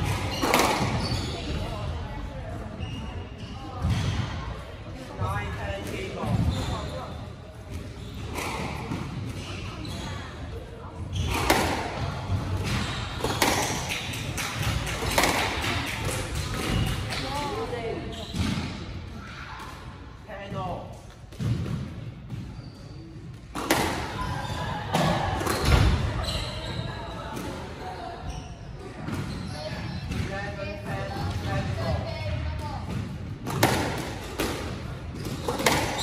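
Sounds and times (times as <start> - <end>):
squash ball echoing hits: 0.0 - 2.2, 11.1 - 27.8, 28.9 - 36.0.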